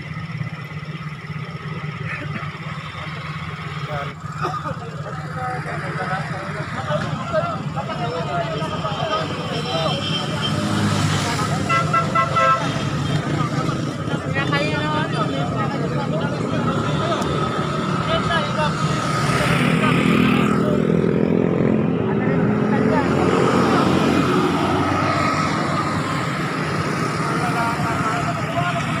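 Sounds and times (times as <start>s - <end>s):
car engines running: 0.0s - 29.0s
motorcycle engines running: 0.0s - 29.0s
people talking: 1.4s - 29.0s
vehicle horn: 11.6s - 13.2s.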